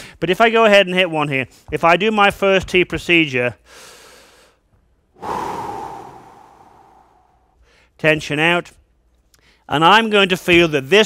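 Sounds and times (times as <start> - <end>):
long exhale through mouth: 5.2 - 7.5
man inhaling: 5.2 - 8.0.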